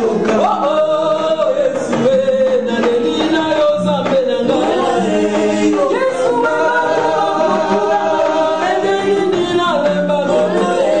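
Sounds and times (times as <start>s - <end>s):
choir singing gospel in harmony: 0.0s - 11.0s.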